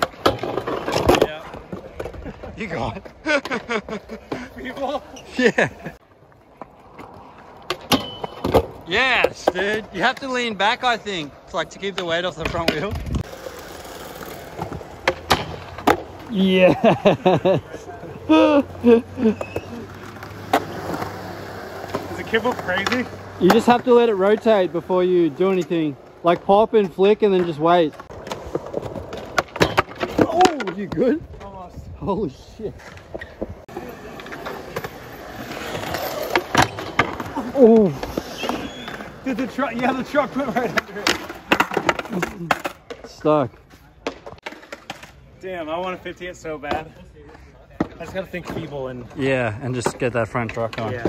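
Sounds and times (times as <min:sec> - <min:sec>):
skateboard wheels rolling on concrete: 0:00.0 - 0:51.0
skateboard thud: 0:14.5 - 0:16.3, 0:19.4 - 0:24.5, 0:27.4 - 0:31.2.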